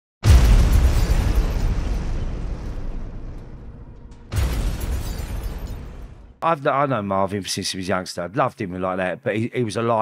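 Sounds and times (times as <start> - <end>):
explosion blast with deep rumble: 0.2 - 6.4.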